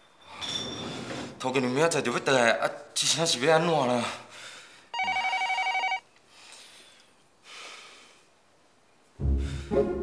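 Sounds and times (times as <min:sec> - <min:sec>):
telephone ringing: 0:04.9 - 0:06.1.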